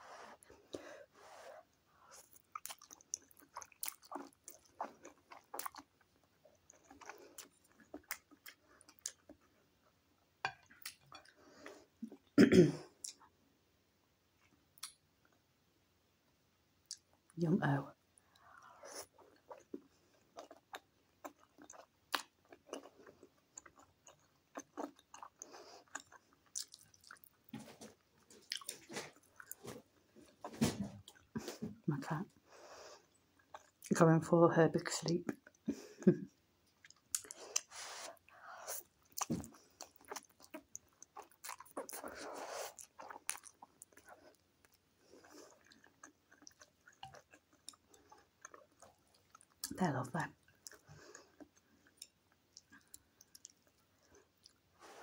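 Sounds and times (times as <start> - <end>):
soft chewing: 0.0 - 13.4, 14.3 - 15.4, 16.8 - 34.0, 35.2 - 55.0.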